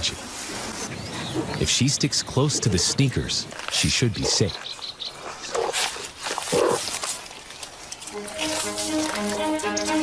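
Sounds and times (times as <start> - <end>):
background music: 8.0 - 10.0.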